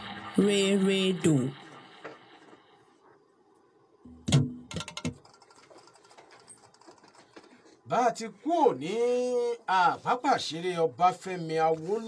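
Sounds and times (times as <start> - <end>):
faint rapid clicking: 4.8 - 7.8
man speaking: 7.9 - 12.0.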